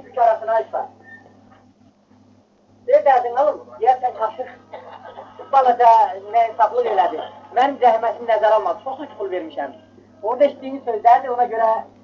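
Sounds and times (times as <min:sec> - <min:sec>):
steady low hum: 0:00.0 - 0:12.0
man speaking: 0:03.0 - 0:11.9.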